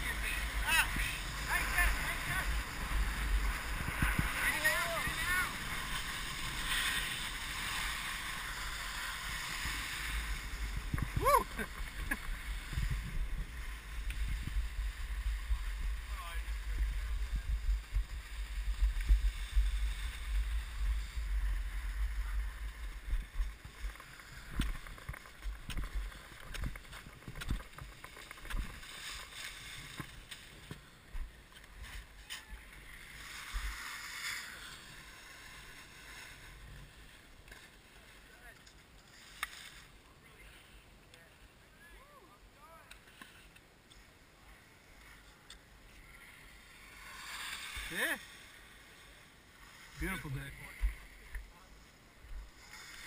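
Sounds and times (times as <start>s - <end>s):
wind on microphone: 0.0s - 28.8s
skis and poles clicking: 0.0s - 41.3s, 42.7s - 53.0s
skis sliding on snow: 0.0s - 53.0s.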